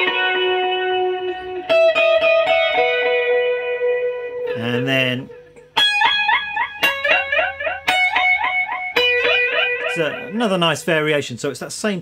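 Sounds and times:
electric guitar with delay echoes: 0.0 - 10.5.

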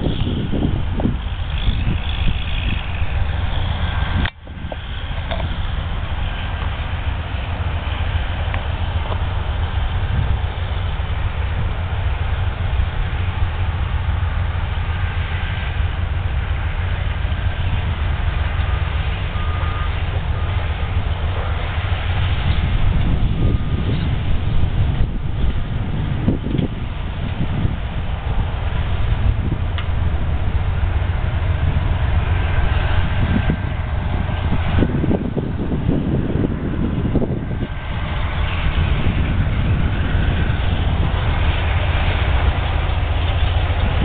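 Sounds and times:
diesel locomotive engine rumble: 0.0 - 44.0.

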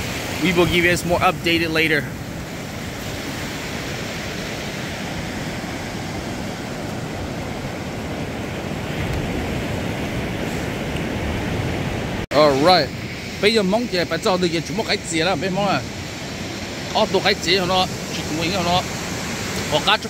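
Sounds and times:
waves breaking on sandy beach: 0.0 - 20.0.

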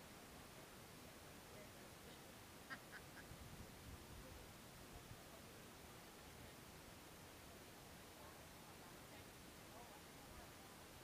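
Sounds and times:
faint background hiss: 0.0 - 11.0
duck quacking: 2.7 - 3.2.

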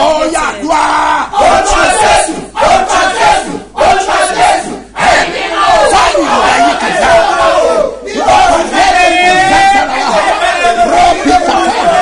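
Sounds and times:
man shouting chanted prayer: 0.0 - 3.0, 5.7 - 12.0.

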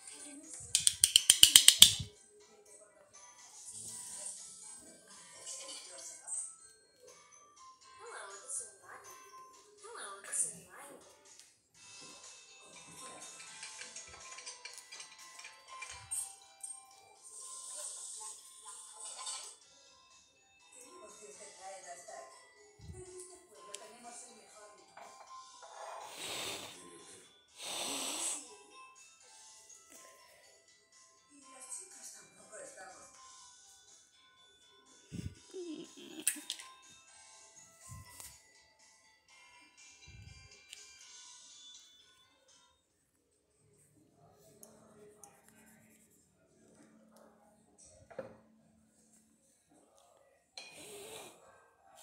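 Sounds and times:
background music with voice: 0.0 - 0.8, 1.8 - 19.7, 20.6 - 34.0, 34.8 - 38.4
rapid ratchet-like clicks: 0.8 - 2.0.

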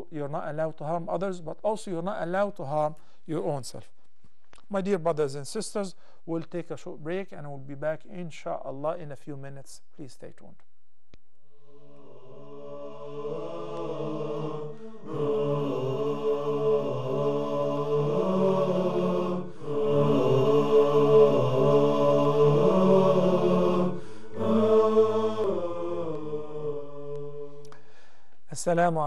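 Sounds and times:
a cappella voices chanting: 11.5 - 28.8.

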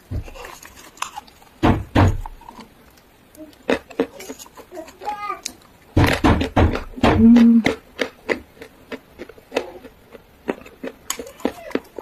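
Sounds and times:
crunchy chewing: 0.2 - 1.6, 2.2 - 12.0.

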